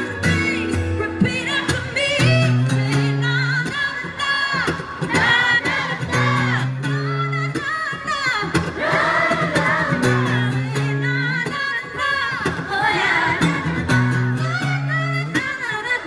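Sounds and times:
acoustic guitar: 0.0 - 16.0
woman singing: 0.0 - 16.0.

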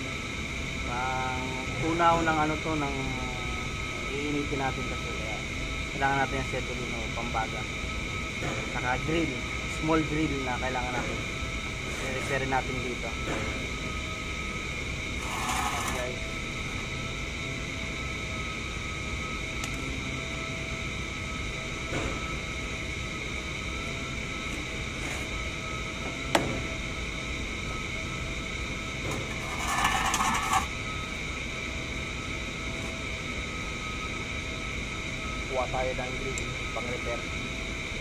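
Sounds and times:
workshop machinery humming: 0.0 - 38.0.

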